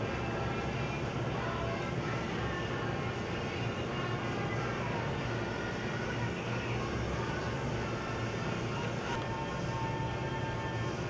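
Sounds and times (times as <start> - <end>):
faint music: 0.0 - 11.0
shop background hum: 0.0 - 11.0.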